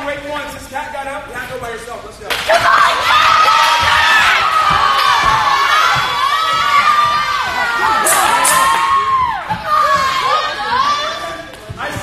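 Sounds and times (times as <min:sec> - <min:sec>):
crowd of kids cheering and shouting: 0:02.4 - 0:12.0
sharp shrieks: 0:07.8 - 0:09.4.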